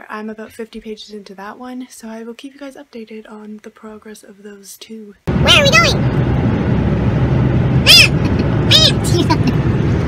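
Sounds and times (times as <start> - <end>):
car road and engine noise: 5.3 - 10.0
person squealing: 7.9 - 9.2.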